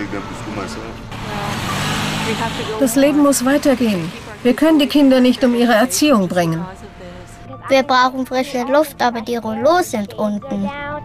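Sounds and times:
car passing: 0.0 - 9.2.

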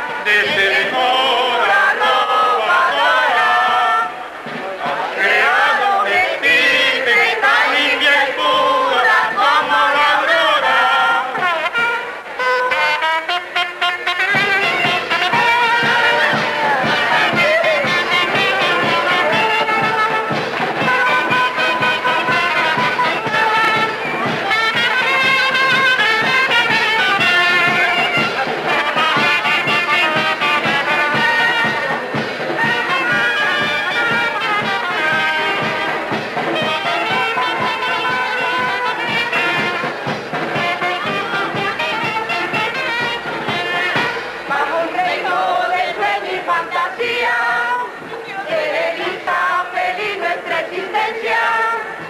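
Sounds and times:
brass band music: 0.0 - 52.0.

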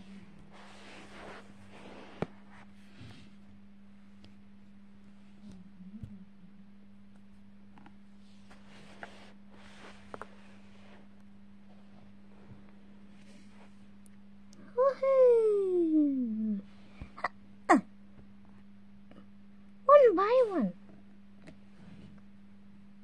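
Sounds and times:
faint steady hum: 0.0 - 23.0.

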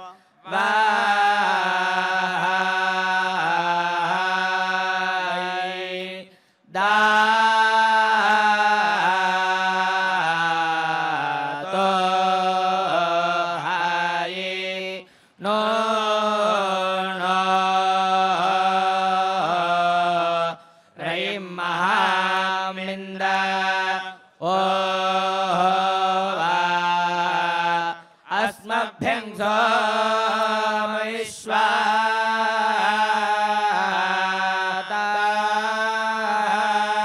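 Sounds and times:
men chanting in unison: 0.0 - 37.0.

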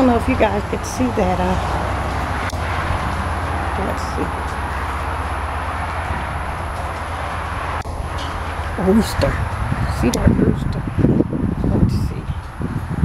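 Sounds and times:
constant low rumble: 0.0 - 13.0.

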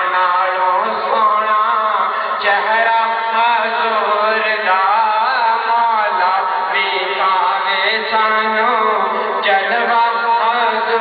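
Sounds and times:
person chanting: 0.0 - 11.0.

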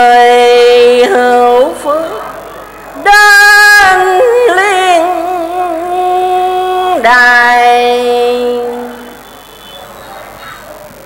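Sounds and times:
person chanting in long notes: 3.0 - 9.8.

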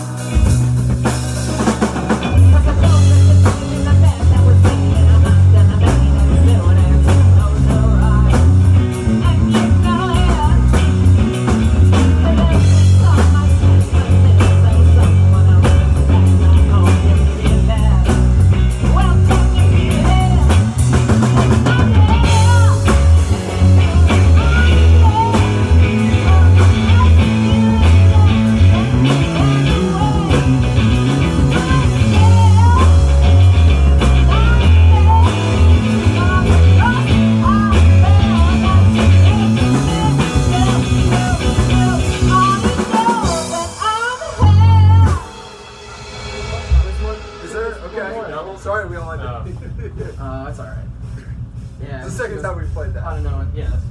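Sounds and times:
electric guitars: 0.0 - 47.9
drum kit: 0.0 - 53.9
electric bass: 0.0 - 53.9
man singing into a microphone: 1.4 - 10.8.

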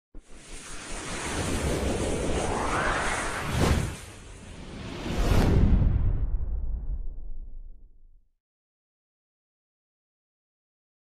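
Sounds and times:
whoosh sound effect: 0.2 - 6.4.

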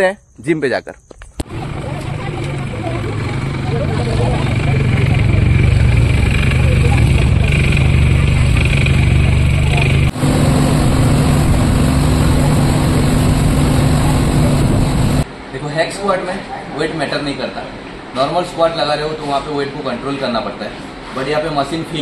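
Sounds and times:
boat engine humming: 1.4 - 15.2.

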